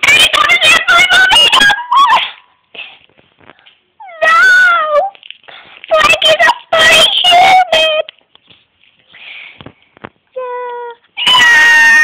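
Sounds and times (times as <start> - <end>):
rustling: 5.0 - 6.8, 8.0 - 10.3.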